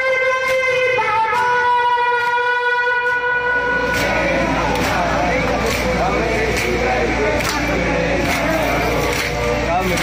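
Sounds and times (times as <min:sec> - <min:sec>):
long held horn-like note: 0:00.0 - 0:04.0.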